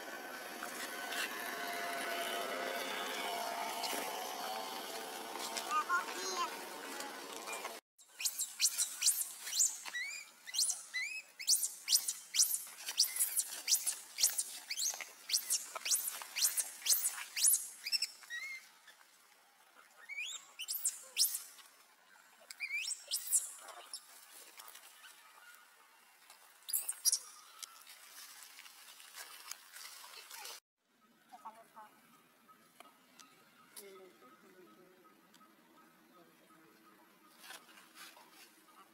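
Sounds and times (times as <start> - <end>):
infant monkey squealing: 8.2 - 18.6.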